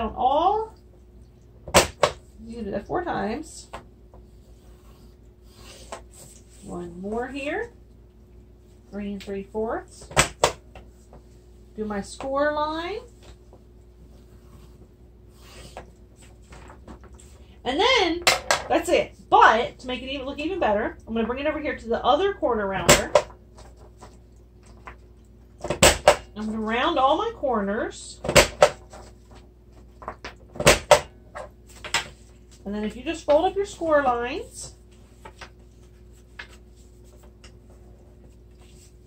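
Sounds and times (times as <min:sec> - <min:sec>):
paper handling: 0:34.9 - 0:39.0.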